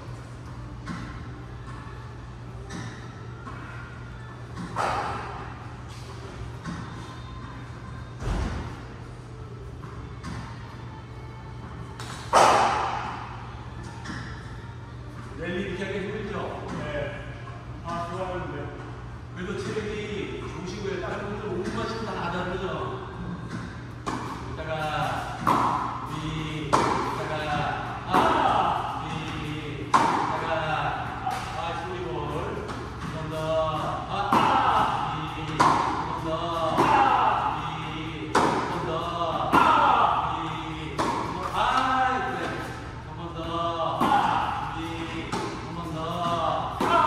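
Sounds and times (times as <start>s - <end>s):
tennis ball hits and bounces: 25.1s - 25.9s, 26.7s - 27.4s, 29.1s - 30.5s, 34.2s - 37.2s, 38.3s - 38.9s, 39.5s - 40.0s, 40.9s - 42.7s, 45.2s - 47.0s.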